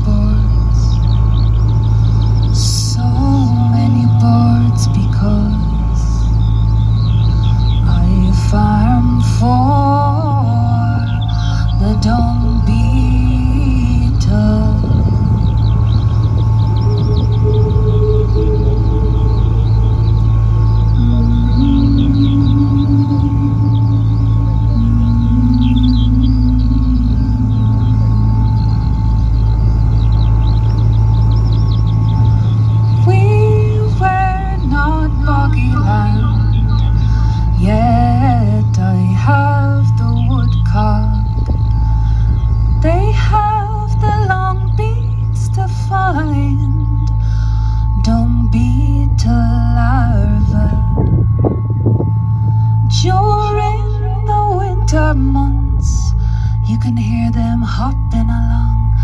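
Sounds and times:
woman's wordless vocals: 0.0 - 1.2, 2.5 - 6.4, 7.8 - 15.6, 20.9 - 28.8, 33.0 - 41.6, 42.8 - 51.3, 52.9 - 59.0
low electronic drone: 0.0 - 59.0.

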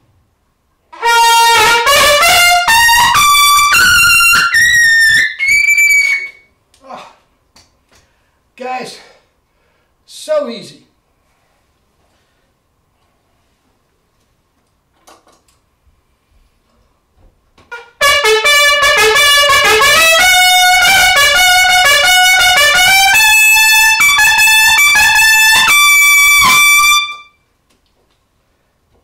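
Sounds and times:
trumpet playing: 0.9 - 6.4, 17.7 - 27.4
person speaking: 8.6 - 9.3, 10.0 - 11.0.

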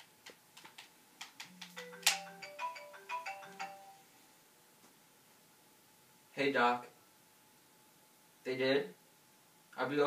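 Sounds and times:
phone ringtone tune: 1.5 - 4.1.

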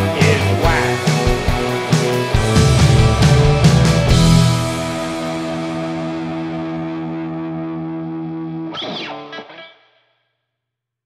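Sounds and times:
distorted electric guitar chord: 0.0 - 8.8.

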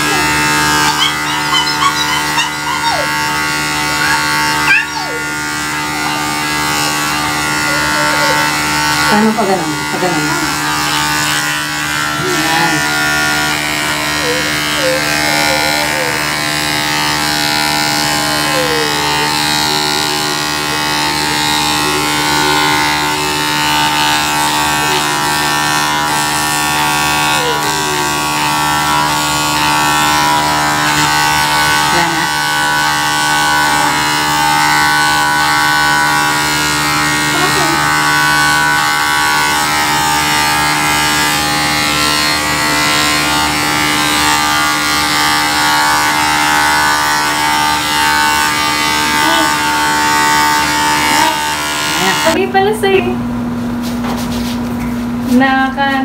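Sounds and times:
electric hair clippers buzzing: 0.0 - 56.0.

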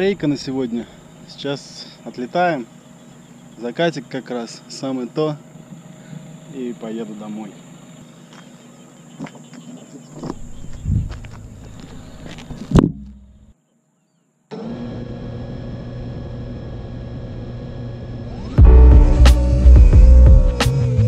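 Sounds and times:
quadcopter motors idling: 14.5 - 18.8.

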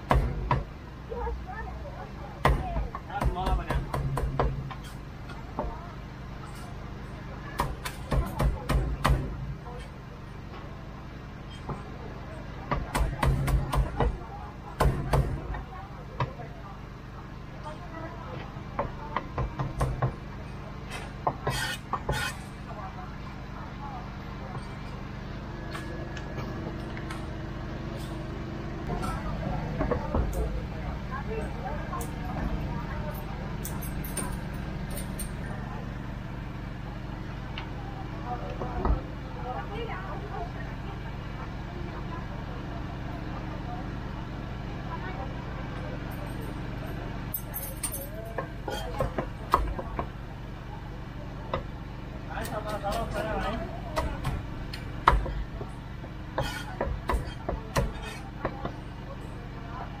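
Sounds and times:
background chatter: 0.0 - 60.0.

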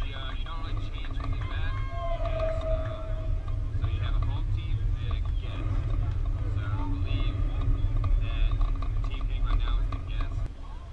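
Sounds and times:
distant voices calling out: 0.0 - 10.5
wind rumble on microphone: 0.0 - 10.6.

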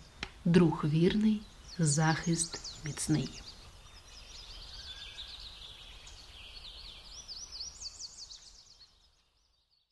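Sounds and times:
songbirds chirping: 0.0 - 9.9.

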